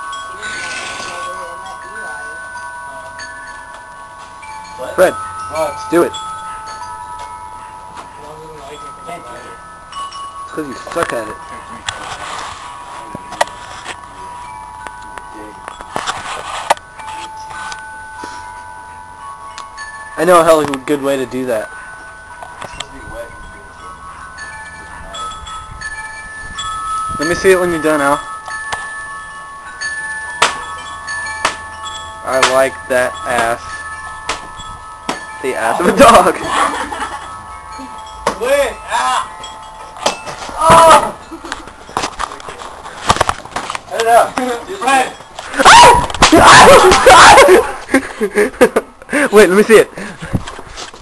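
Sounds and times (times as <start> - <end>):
chime-like ringing tones: 0.0 - 43.0, 43.9 - 50.2.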